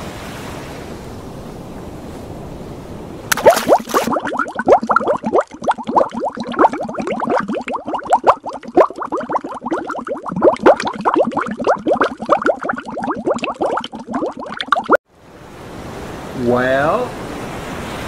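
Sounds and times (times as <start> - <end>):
underwater bubbling bloops: 3.3 - 15.0.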